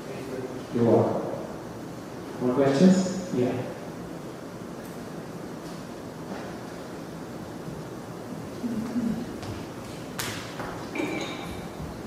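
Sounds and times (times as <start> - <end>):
background hiss of a hall: 0.0 - 12.0.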